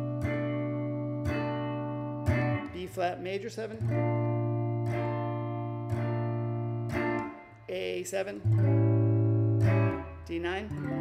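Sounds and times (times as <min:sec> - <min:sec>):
electric guitar chord strums: 0:00.0 - 0:11.0.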